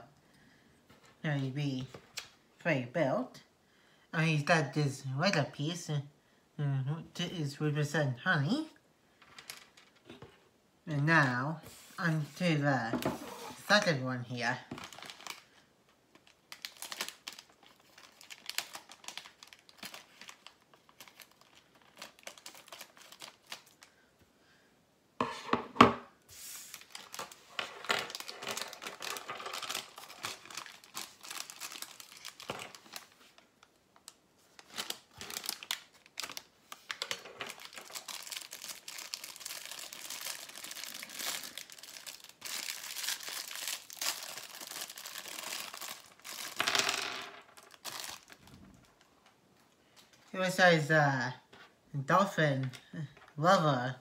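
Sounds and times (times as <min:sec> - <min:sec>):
plastic bag crinkling: 0:11.7 - 0:23.9, 0:26.4 - 0:49.1.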